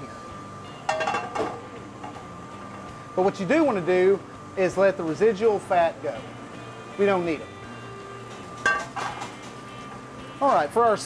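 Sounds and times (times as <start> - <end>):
kitchen hum: 0.0 - 11.0
metal skillet clanking on stove: 0.9 - 2.2, 8.6 - 9.4.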